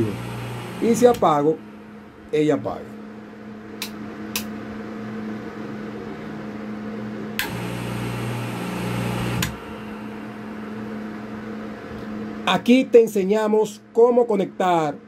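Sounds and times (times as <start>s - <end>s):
water pump motor humming: 0.0s - 2.0s, 7.4s - 11.4s
faint steady hum: 0.0s - 15.0s
rocker switch clicking: 3.8s - 4.5s.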